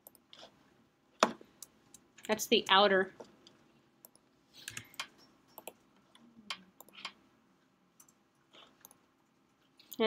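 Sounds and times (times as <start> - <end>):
keyboard and mouse clicks: 0.0 - 0.5, 1.2 - 7.2, 8.0 - 9.0.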